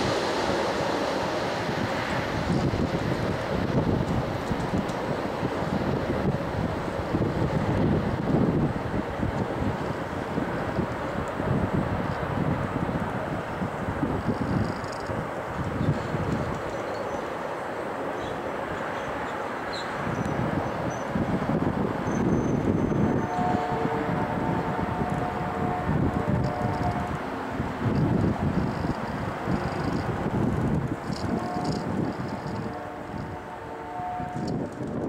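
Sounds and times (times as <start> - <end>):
wind on microphone: 0.0 - 17.2, 18.2 - 35.0
train rumble: 0.0 - 35.0
multi-note train horn: 22.2 - 28.1, 31.1 - 35.0.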